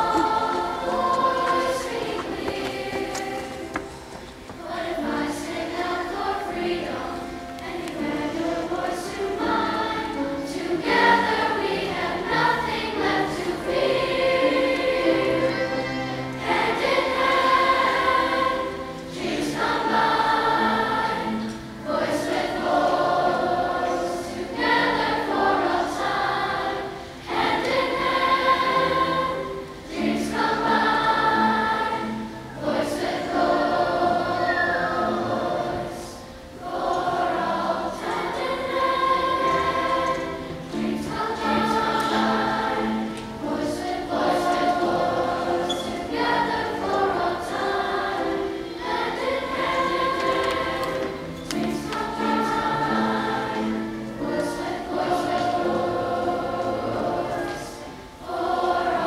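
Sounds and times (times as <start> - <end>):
choir singing: 0.0 - 59.0.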